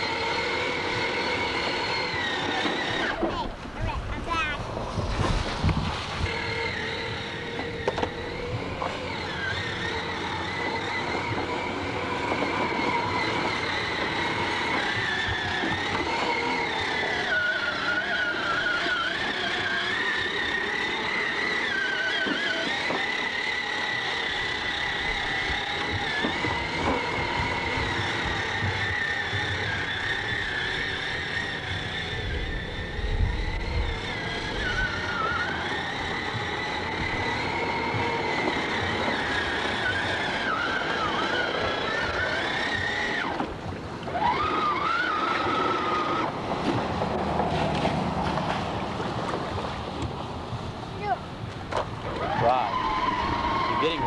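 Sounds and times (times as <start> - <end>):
toy car electric motor whining: 0.0 - 48.2, 51.0 - 54.0.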